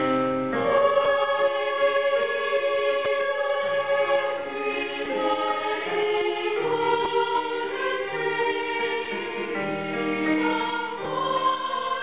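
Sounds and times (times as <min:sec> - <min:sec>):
women's choir singing harmony: 0:00.5 - 0:12.0.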